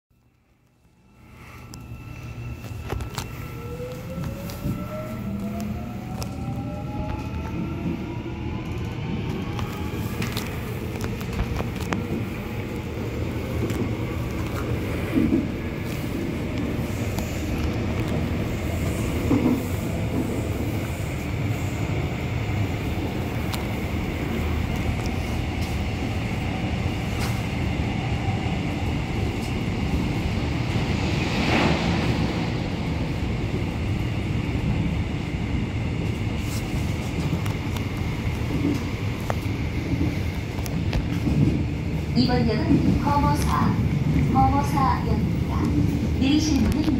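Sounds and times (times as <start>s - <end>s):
subway train rumbling: 0.1s - 46.9s.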